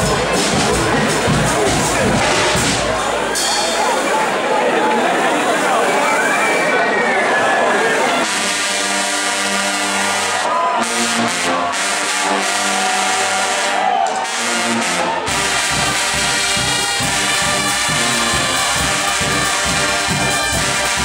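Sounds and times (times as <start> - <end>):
drums steady beat: 0.0 - 4.1, 14.1 - 21.0
brass band sustained chords: 0.0 - 4.3, 7.2 - 21.0.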